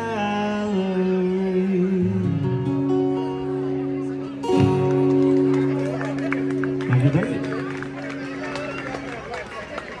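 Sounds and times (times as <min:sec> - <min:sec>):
people chattering: 0:00.0 - 0:10.0
acoustic guitar chord ringing: 0:00.1 - 0:09.1.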